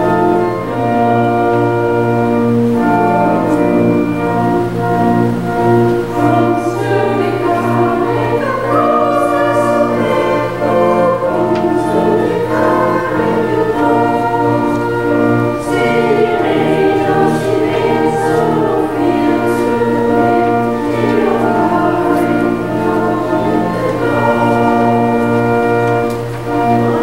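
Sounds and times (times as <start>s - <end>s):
choir and congregation singing hymn: 0.0s - 27.0s
organ accompaniment: 0.0s - 27.0s.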